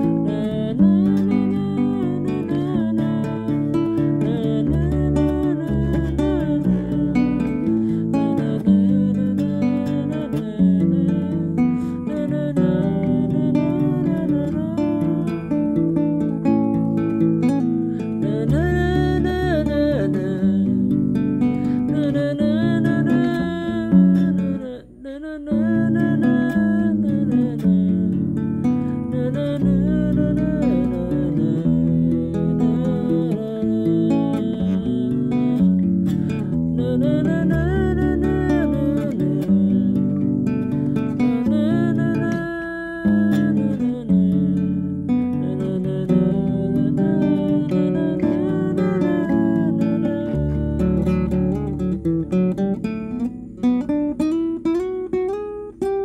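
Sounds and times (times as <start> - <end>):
acoustic guitar: 0.0 - 56.0
woman singing: 0.0 - 56.0.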